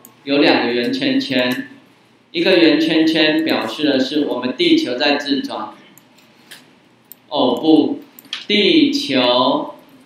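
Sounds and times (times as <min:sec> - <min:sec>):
person speaking: 0:00.0 - 0:06.2, 0:07.2 - 0:09.9.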